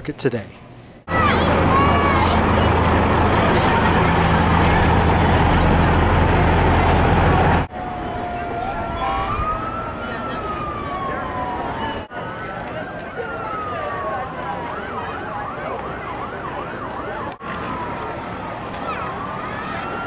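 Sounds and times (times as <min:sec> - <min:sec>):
street noise: 0:00.0 - 0:20.0
loud rumble with low hum: 0:01.1 - 0:08.2
emergency siren wailing: 0:01.1 - 0:20.0.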